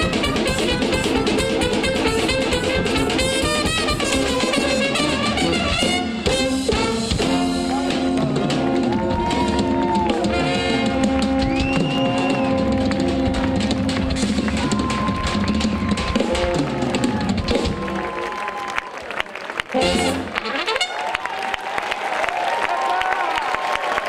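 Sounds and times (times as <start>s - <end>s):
trumpets and horns holding notes: 0.0s - 14.6s, 19.6s - 21.2s
bass drum and drum kit: 0.0s - 18.3s
brass band playing: 0.0s - 18.5s, 19.6s - 21.3s.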